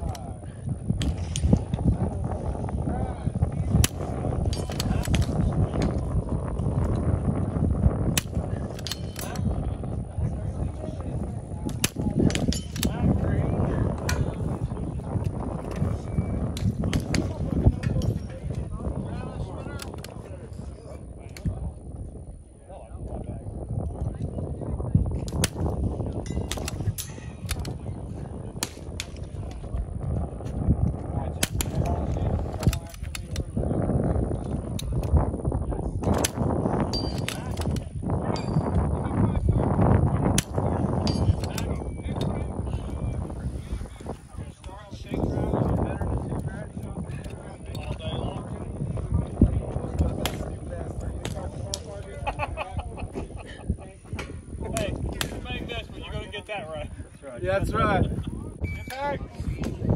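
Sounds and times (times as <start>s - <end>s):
steady low rumble: 0.0s - 58.6s.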